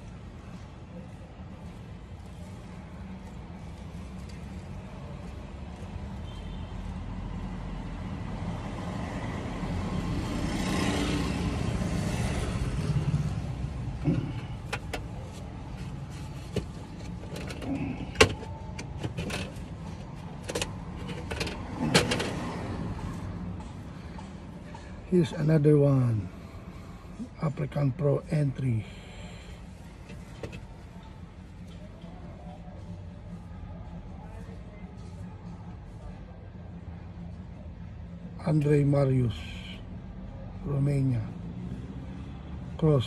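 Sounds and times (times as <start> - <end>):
vehicle passing: 7.2 - 16.4, 19.8 - 27.2.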